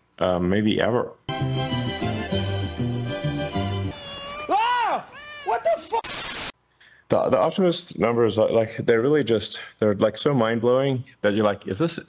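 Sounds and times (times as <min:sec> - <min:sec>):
cat meowing: 0:03.9 - 0:05.7.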